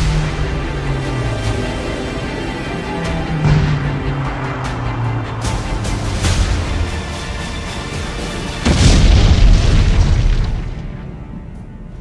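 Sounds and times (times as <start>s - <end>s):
explosion boom: 8.6s - 11.0s.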